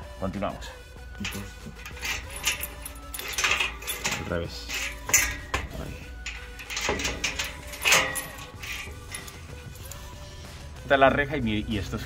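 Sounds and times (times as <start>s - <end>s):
light metallic clicks: 1.2s - 10.1s
keys jangling on key ring: 1.2s - 10.2s.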